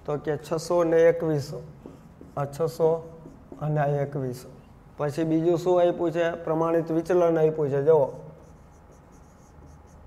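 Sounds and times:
marker squeaking on whiteboard: 1.7s - 3.7s, 8.4s - 10.0s.

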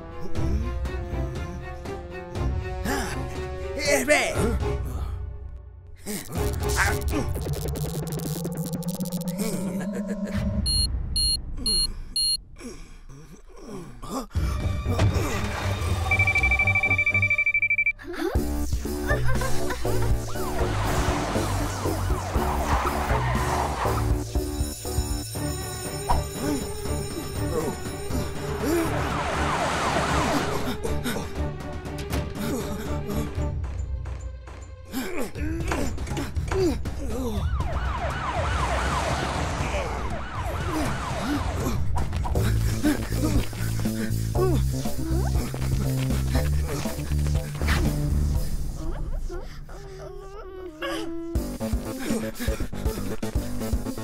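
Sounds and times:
high electronic alarm beeps: 7.0s - 9.4s, 10.7s - 12.4s, 16.0s - 18.0s
police siren wailing: 20.4s - 24.0s, 28.5s - 30.5s, 37.3s - 42.0s.

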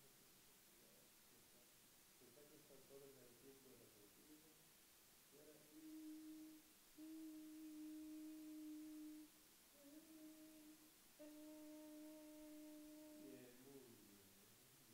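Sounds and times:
person holding a steady vowel: 5.3s - 14.4s.

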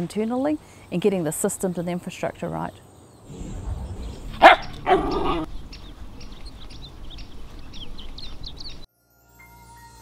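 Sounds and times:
outdoor background noise: 0.0s - 8.9s
small birds chirping: 0.2s - 8.9s.

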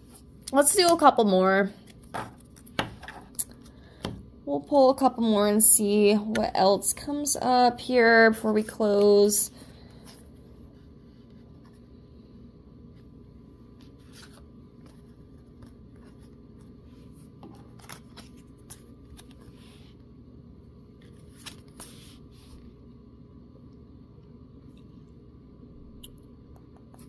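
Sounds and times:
cards rustling and clicking: 13.8s - 16.8s, 17.4s - 19.6s, 21.0s - 22.2s.

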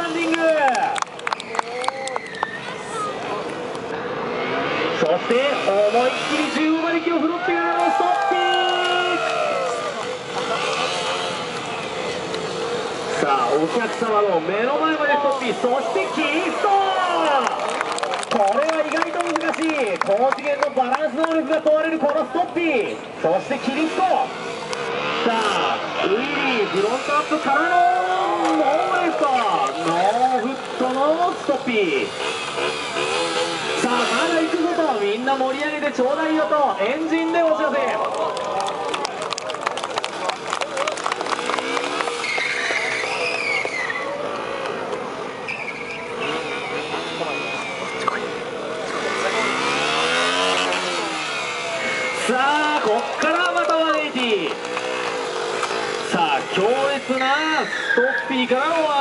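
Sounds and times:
tyre squeal: 1.4s - 3.0s, 42.1s - 44.2s, 45.4s - 48.3s, 57.1s - 58.7s
motorcycle engine revving: 2.8s - 37.9s, 40.0s - 59.0s.

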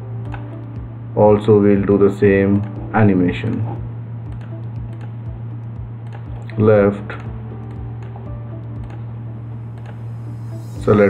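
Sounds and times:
low electrical hum and hiss: 0.0s - 11.0s
computer mouse clicking: 4.3s - 5.2s, 6.0s - 8.2s, 8.8s - 9.1s, 9.7s - 10.0s.

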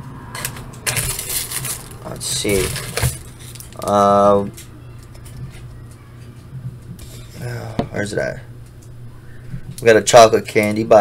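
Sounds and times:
plastic wrappers crinkling: 0.4s - 6.1s.

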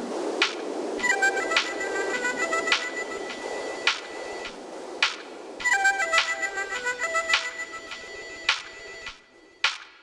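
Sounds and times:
hazy noise layer: 0.0s - 10.0s.

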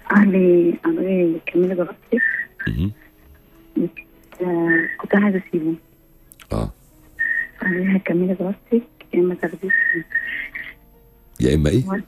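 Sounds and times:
woman speaking over telephone: 3.8s - 5.8s.

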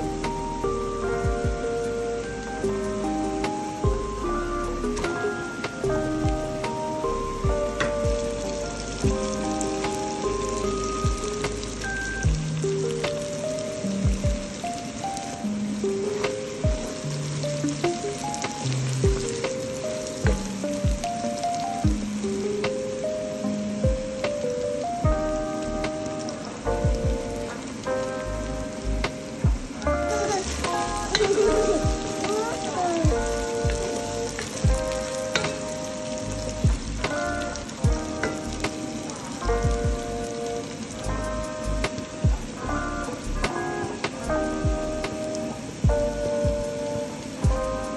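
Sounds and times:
background music: 0.0s - 47.9s
vegetables sizzling in oil: 0.0s - 47.9s.

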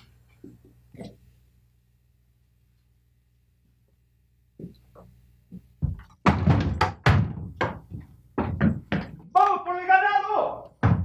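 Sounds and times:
heavy thuds and knocks: 5.8s - 9.3s, 10.8s - 11.0s.

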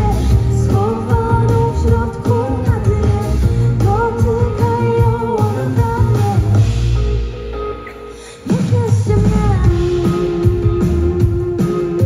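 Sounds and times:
women singing: 0.0s - 6.8s, 8.2s - 12.0s
pop band playing: 0.0s - 12.0s.

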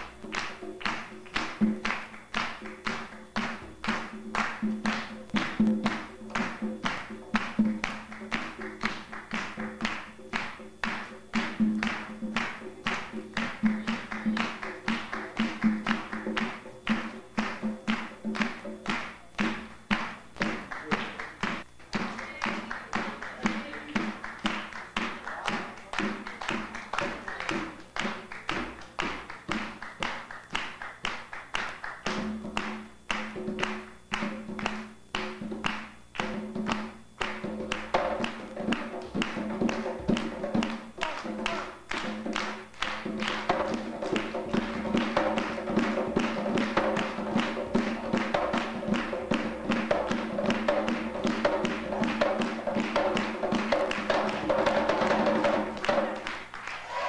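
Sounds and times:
hand drum struck with hands: 32.1s - 56.2s.

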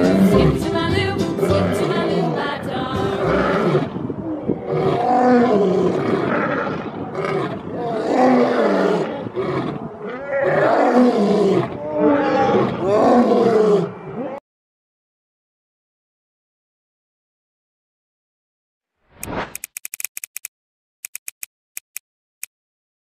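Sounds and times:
lions roaring: 3.1s - 14.4s.

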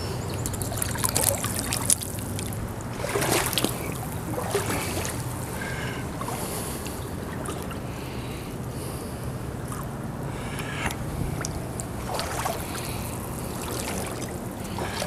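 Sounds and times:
steady low rumble: 0.0s - 15.0s
boots splashing through water: 0.4s - 7.9s, 11.3s - 15.0s.

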